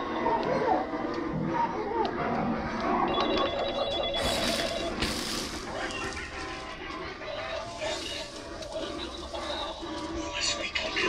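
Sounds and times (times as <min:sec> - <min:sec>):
telephone ringing: 0:03.1 - 0:06.6.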